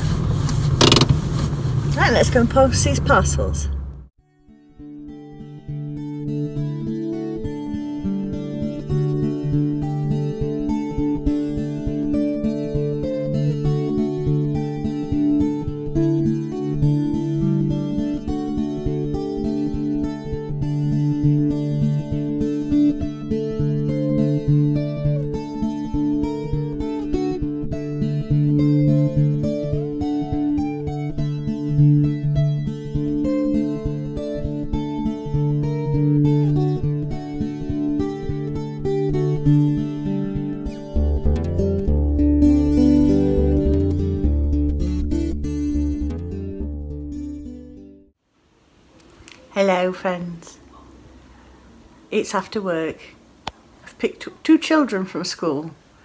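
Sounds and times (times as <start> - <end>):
plucked acoustic guitar music: 2.0 - 48.1.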